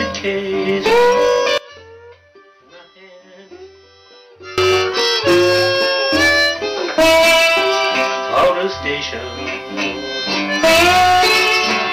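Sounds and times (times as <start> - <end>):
person singing: 0.0 - 1.6, 4.9 - 11.9
upright bass plucking: 0.0 - 2.7, 3.5 - 11.9
blues harmonica: 0.0 - 11.9
resonator guitar: 0.0 - 11.9.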